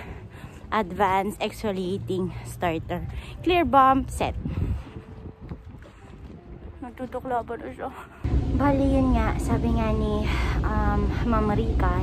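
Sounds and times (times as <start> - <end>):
woman speaking: 0.7 - 4.4, 6.8 - 12.0
wind buffeting microphone: 3.0 - 12.0.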